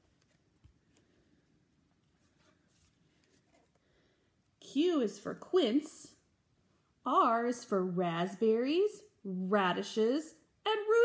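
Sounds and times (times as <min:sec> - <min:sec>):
cardboard page turning: 0:00.0 - 0:01.1, 0:02.1 - 0:03.8.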